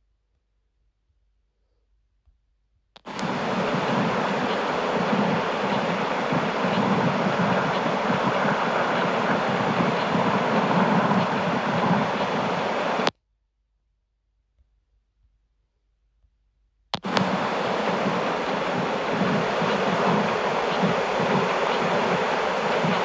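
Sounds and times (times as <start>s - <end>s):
click: 3.0s - 3.3s, 16.9s - 17.3s
steady rushing noise: 3.0s - 13.1s, 17.0s - 23.0s.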